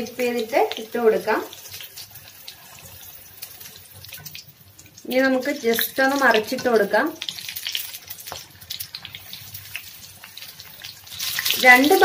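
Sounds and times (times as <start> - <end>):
chillies deep-frying in oil: 0.0 - 12.0.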